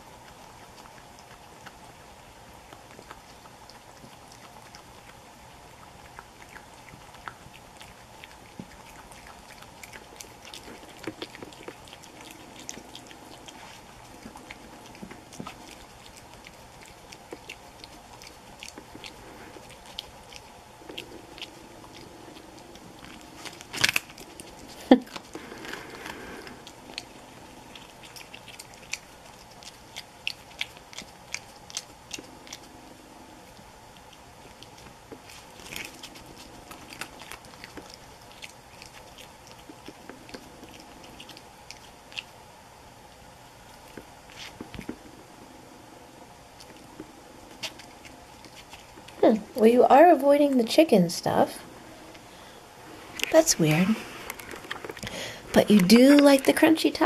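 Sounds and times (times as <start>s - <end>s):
animal crunching hard taco shell: 0.0s - 45.6s, 46.2s - 49.2s, 54.1s - 56.6s
smacking bites: 5.8s - 32.7s, 34.0s - 42.4s, 54.2s - 56.6s.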